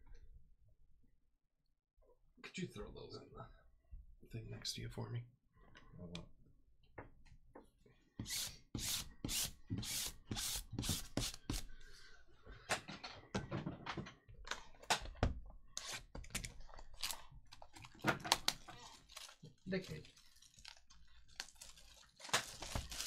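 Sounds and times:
plastic wrap crinkling and tearing: 0:16.4 - 0:23.0.

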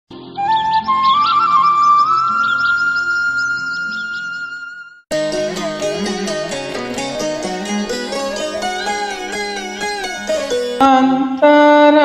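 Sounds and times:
long high instrument note: 0:05.1 - 0:10.8.

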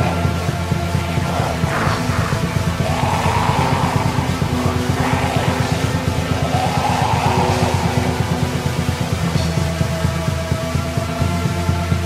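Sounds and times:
black metal song: 0:00.0 - 0:12.0.

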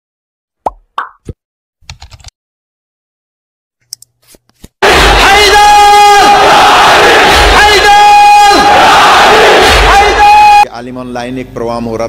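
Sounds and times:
plops dropping in pitch: 0:00.6 - 0:01.4.

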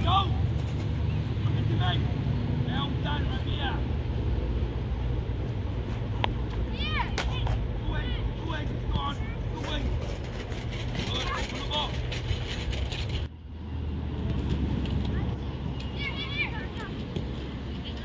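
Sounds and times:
children calling and shouting: 0:06.2 - 0:09.9, 0:14.9 - 0:18.0.

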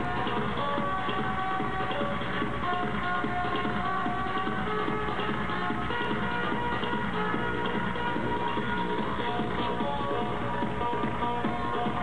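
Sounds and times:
trance music over sound system: 0:00.0 - 0:12.0.

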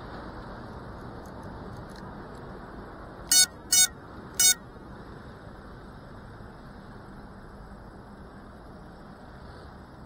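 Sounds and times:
high electronic beeps: 0:03.3 - 0:04.6.

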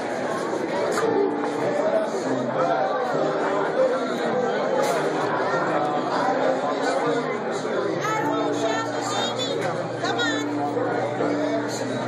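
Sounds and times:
chatter of many people: 0:00.0 - 0:12.0
music playing: 0:00.0 - 0:12.0.

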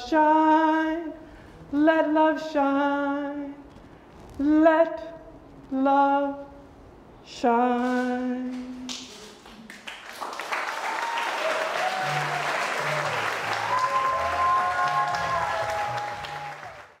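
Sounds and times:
audience applause: 0:09.7 - 0:17.0.

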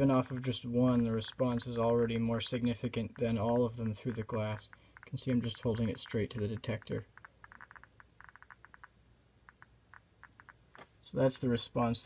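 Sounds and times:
geiger counter clicks: 0:00.0 - 0:10.9.

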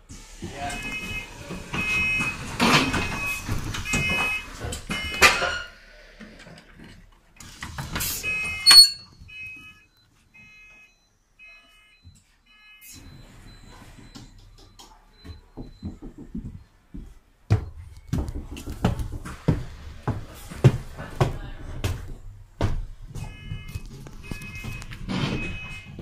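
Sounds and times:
bus door warning beeps: 0:00.4 - 0:05.7, 0:07.9 - 0:16.8, 0:23.2 - 0:26.0.

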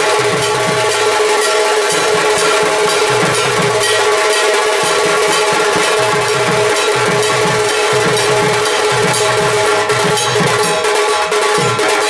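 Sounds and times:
drums beaten in fast rhythm: 0:00.0 - 0:12.0.

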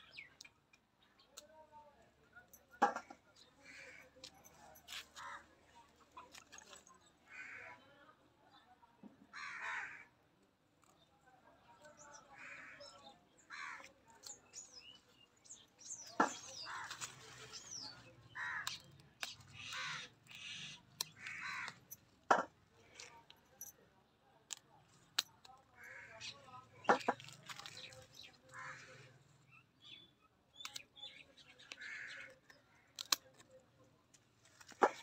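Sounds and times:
crows cawing: 0:07.3 - 0:07.8, 0:09.3 - 0:10.1, 0:12.4 - 0:13.9, 0:18.3 - 0:18.8, 0:19.6 - 0:21.9, 0:25.8 - 0:26.3, 0:28.5 - 0:29.1, 0:31.7 - 0:32.3
small birds chirping: 0:10.9 - 0:22.0, 0:24.5 - 0:33.5.

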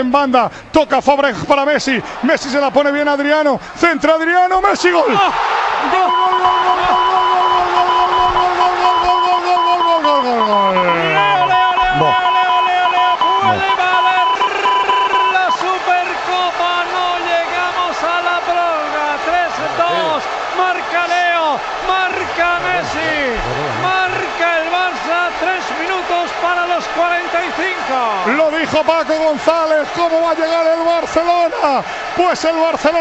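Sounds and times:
excited shouting: 0:04.8 - 0:33.0
commentator's long goal call: 0:05.9 - 0:17.6.

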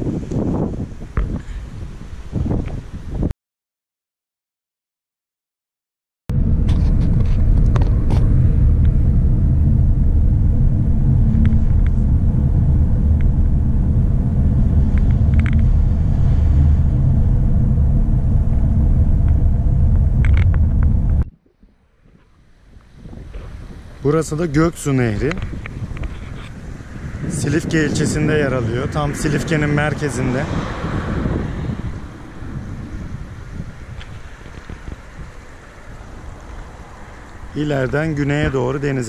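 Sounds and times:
car engine and road rumble: 0:06.3 - 0:39.0.

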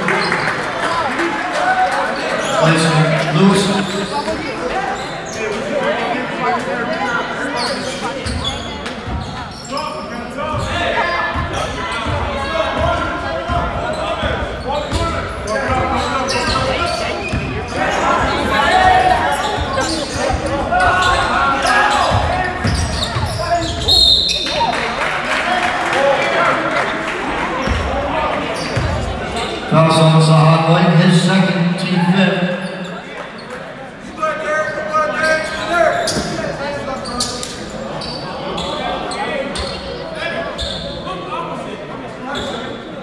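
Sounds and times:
spectators chattering: 0:00.0 - 0:43.0.

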